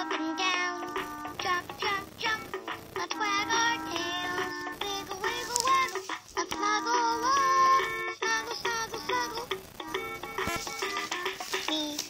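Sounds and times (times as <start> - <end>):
toy playing electronic melody: 0.0 - 11.9
synthesized singing voice: 0.0 - 12.0.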